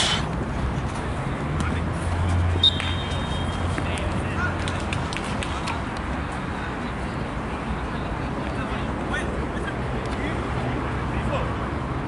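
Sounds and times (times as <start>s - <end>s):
referee's whistle blast: 2.6s - 3.6s.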